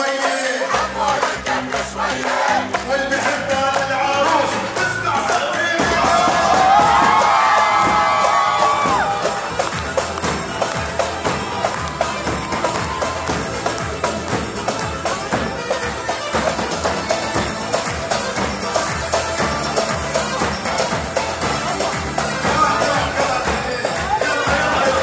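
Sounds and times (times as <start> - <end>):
crowd singing along: 0.0 - 9.7, 20.8 - 25.0
high held vocal line: 0.0 - 9.7, 21.9 - 25.0
crowd clapping and cheering: 0.0 - 25.0
large drums beating: 4.4 - 25.0
person singing on a microphone: 22.3 - 25.0.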